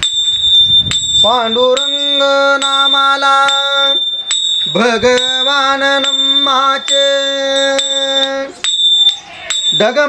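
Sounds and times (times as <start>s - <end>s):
hand cymbals ringing: 0.0s - 10.0s
man singing a long note: 1.2s - 4.0s, 4.6s - 8.6s.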